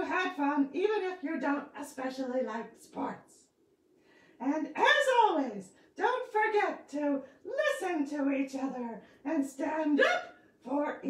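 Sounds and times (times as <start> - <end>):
person talking: 0.0 - 3.4, 4.4 - 11.0.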